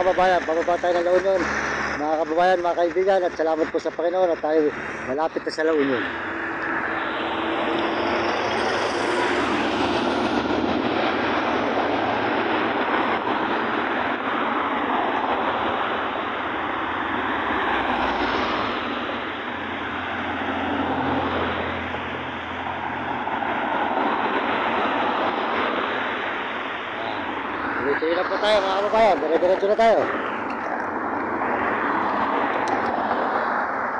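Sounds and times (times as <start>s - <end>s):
road noise from moving vehicle: 0.0s - 33.9s
van passing: 0.0s - 33.9s
wind noise: 0.0s - 33.9s.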